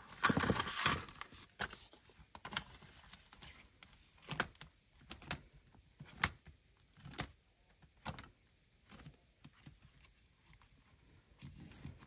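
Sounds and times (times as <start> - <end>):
plastic pages turning with clicks: 0.4 - 8.3.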